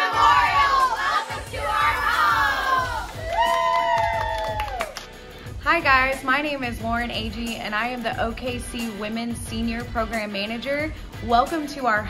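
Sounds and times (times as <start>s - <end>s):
women shouting in unison: 0.0s - 4.8s.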